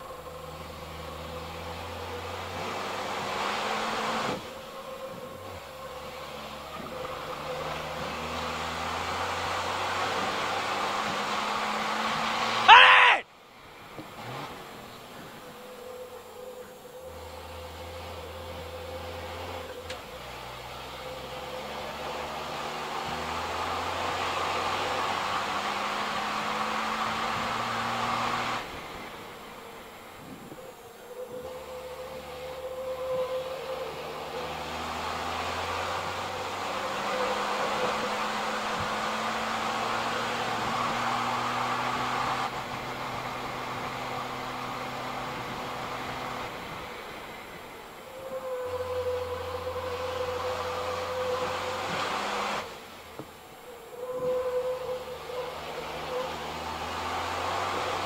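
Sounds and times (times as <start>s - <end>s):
diesel engine at full throttle: 0.0s - 58.0s.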